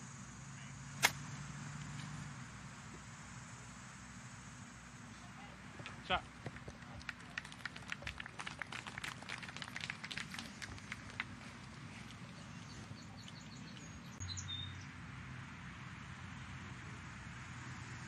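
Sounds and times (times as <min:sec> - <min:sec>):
faint outdoor hiss: 0:00.0 - 0:18.0
light applause: 0:05.2 - 0:13.9
high bird chirps: 0:12.4 - 0:14.8.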